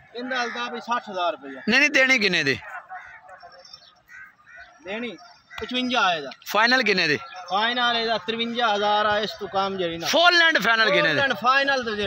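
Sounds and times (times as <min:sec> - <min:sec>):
man speaking: 0:00.0 - 0:03.4, 0:04.8 - 0:12.0
distant bird calls: 0:00.0 - 0:12.0.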